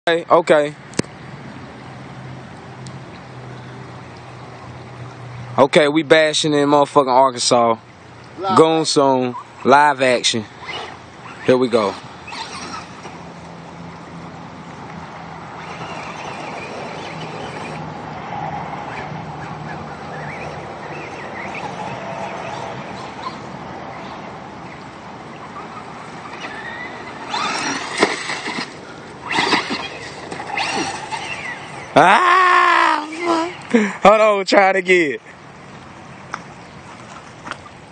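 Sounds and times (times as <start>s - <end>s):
toy truck motor whine: 10.6s - 13.1s, 15.5s - 17.9s, 25.6s - 32.0s.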